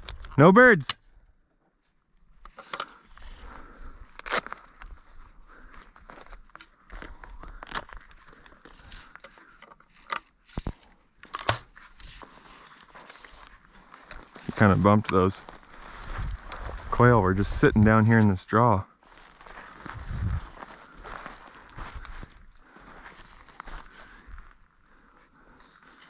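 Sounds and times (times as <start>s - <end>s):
footsteps crunching through dry grass: 3.1s - 9.2s, 9.9s - 18.3s, 19.0s - 26.0s.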